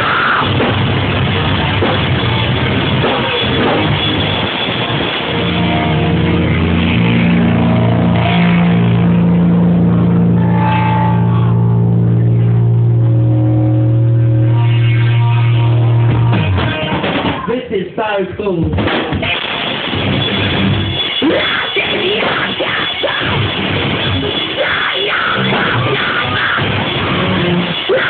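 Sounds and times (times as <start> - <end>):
rock band holding chord: 0.0 - 17.5, 19.2 - 28.0.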